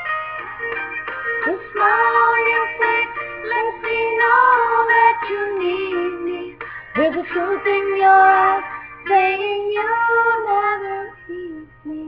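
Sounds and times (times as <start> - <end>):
woman singing country ballad: 1.4 - 12.0.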